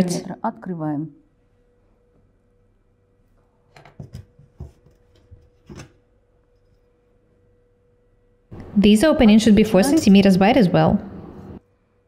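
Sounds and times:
paper and ruler knocking on fabric: 0:03.8 - 0:06.0.

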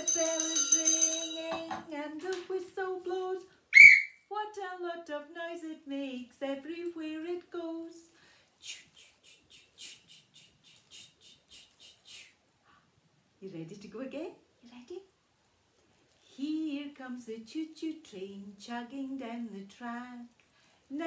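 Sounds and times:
woman singing unaccompanied: 0:00.0 - 0:03.6, 0:04.3 - 0:09.1, 0:16.2 - 0:21.0
loud whistle toot: 0:03.7 - 0:04.2.

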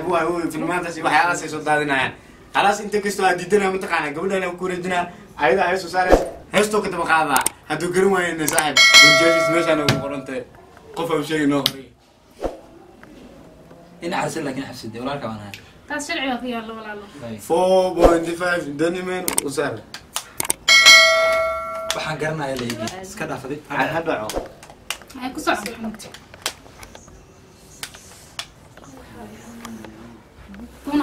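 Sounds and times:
man talking: 0:05.4 - 0:10.4
bright bell ding: 0:08.7 - 0:10.4, 0:20.7 - 0:22.2.

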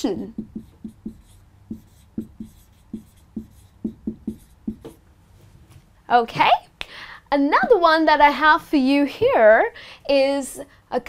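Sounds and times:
marker writing on whiteboard: 0:00.0 - 0:05.0.

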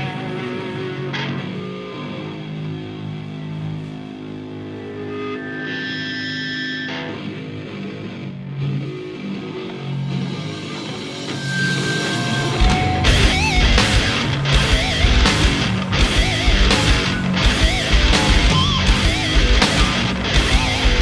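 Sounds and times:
electric guitar held notes: 0:00.0 - 0:21.0
metal band playing live: 0:00.0 - 0:21.0.

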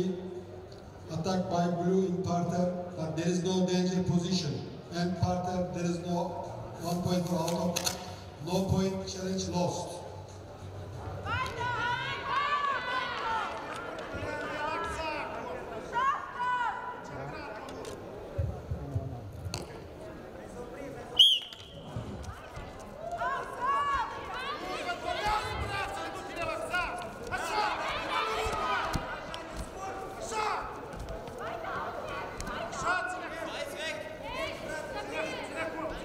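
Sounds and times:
hall background noise: 0:00.0 - 0:36.0
voices calling out in a hall: 0:00.0 - 0:36.0
referee's whistle: 0:21.2 - 0:21.9.

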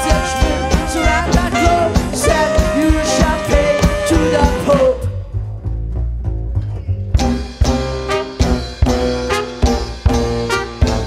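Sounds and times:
low bass line: 0:00.0 - 0:11.0
light plucked strings: 0:05.3 - 0:11.0.

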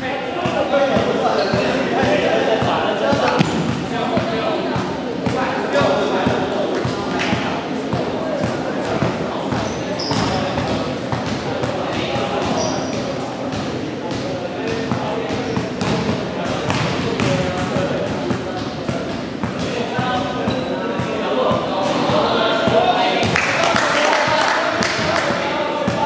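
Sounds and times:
players' voices chattering: 0:00.0 - 0:26.0
basketball bouncing on wooden floor: 0:09.5 - 0:11.4.

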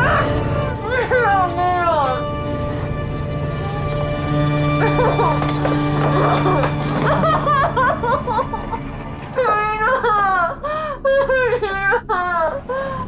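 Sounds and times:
woman laughing: 0:00.0 - 0:01.5, 0:04.8 - 0:08.8, 0:09.4 - 0:12.8
low film score drone: 0:00.0 - 0:13.0.

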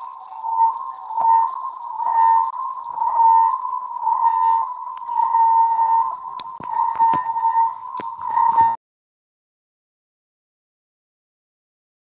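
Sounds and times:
high whine: 0:00.0 - 0:08.8
steady wavering tone: 0:00.0 - 0:08.8.

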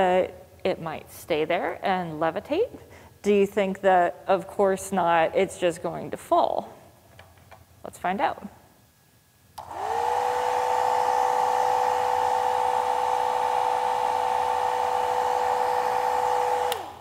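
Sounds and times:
hair dryer running: 0:09.6 - 0:17.0.

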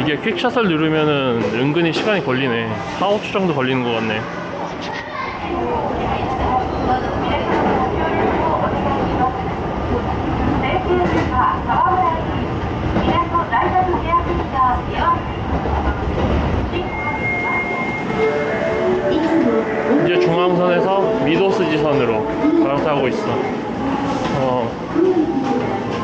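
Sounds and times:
people's voices: 0:00.0 - 0:26.0
train rumbling on rails: 0:00.0 - 0:26.0.

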